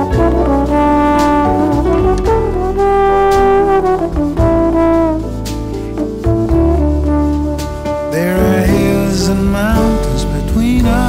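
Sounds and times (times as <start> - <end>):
bass: 0.0 - 11.0
trombone jazz solo: 0.0 - 11.0.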